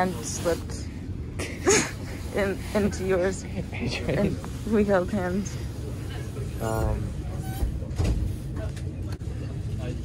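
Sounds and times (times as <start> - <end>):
train carriage rumble: 0.0 - 10.0.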